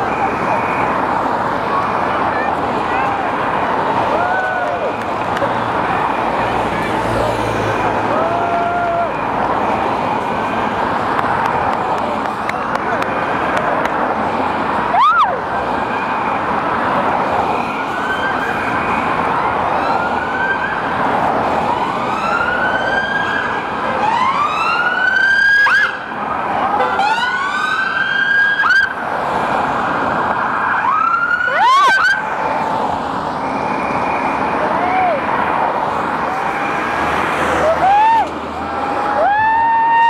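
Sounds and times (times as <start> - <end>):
crowd noise: 0.0 - 24.2, 28.9 - 40.0
police and ambulance sirens wailing: 0.0 - 40.0.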